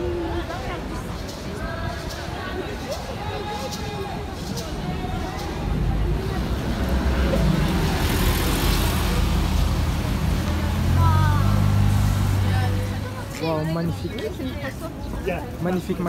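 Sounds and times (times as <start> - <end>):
car engine accelerating: 6.4 - 13.2.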